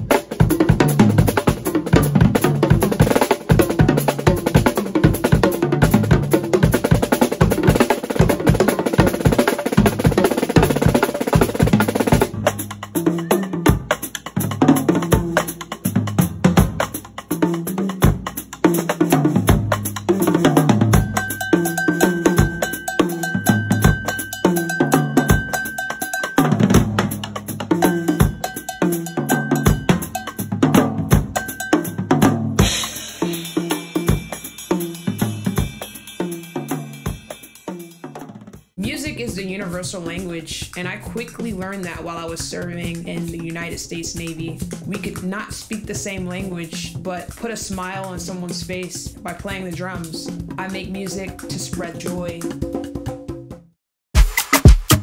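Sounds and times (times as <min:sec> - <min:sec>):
drum kit with cymbals: 0:00.0 - 0:55.0.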